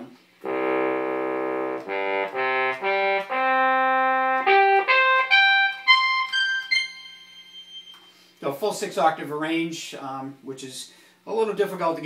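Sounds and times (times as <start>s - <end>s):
synthesized trumpet notes: 0.4s - 8.2s.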